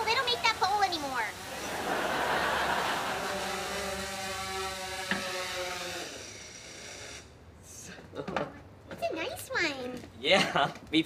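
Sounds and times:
drone rotors buzzing: 0.0s - 7.3s.

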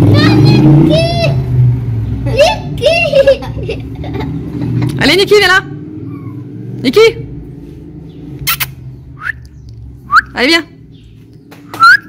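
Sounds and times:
sharp tongue click: 8.4s - 9.8s.

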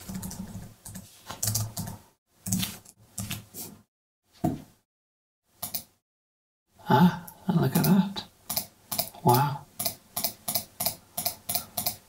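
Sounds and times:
mouse button clicking rapidly: 9.8s - 12.0s.

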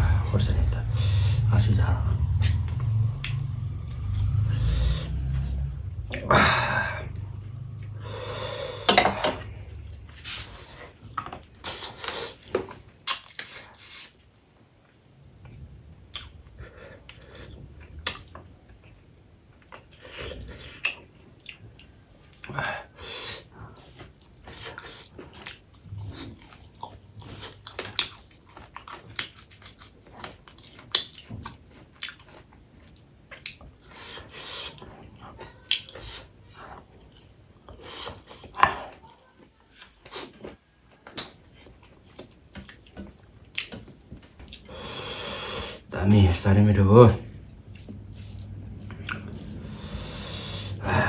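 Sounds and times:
person chewing: 2.2s - 8.0s, 16.0s - 45.8s, 47.3s - 51.0s.

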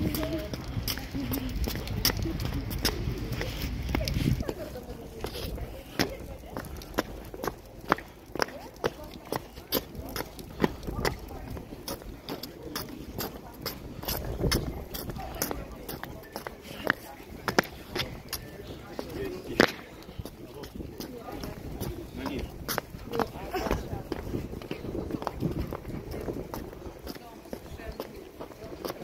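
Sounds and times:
footsteps on stone paving: 0.0s - 29.0s
murmur of voices: 0.0s - 29.0s.

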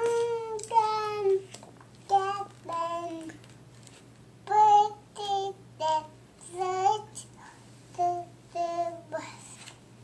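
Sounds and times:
toddler babbling sing-song: 0.0s - 3.4s, 4.4s - 9.6s.

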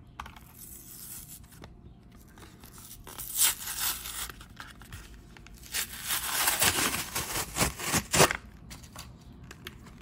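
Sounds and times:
cardboard tearing: 5.6s - 8.4s.

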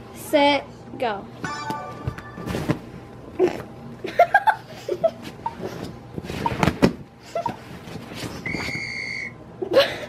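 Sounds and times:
steady high electronic beep: 1.4s - 2.8s.

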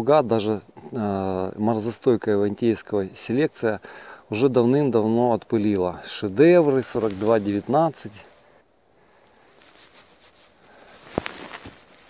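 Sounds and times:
twigs rustling: 5.6s - 12.0s.

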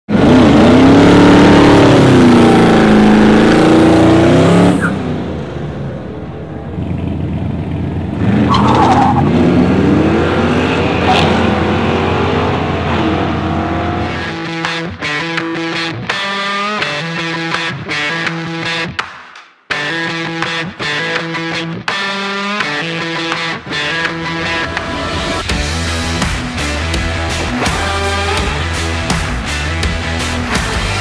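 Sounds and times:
car accelerating through gears: 0.1s - 5.6s, 8.1s - 14.4s
car engine revving: 0.1s - 14.7s, 24.3s - 31.0s.

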